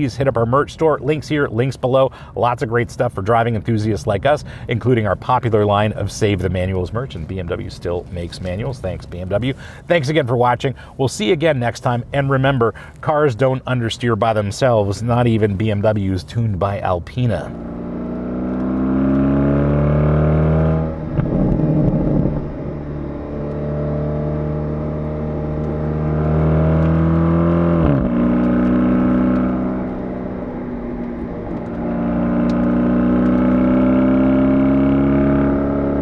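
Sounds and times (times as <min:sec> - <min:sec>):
tyre and road noise: 0:17.2 - 0:36.0
car engine accelerating: 0:17.4 - 0:36.0.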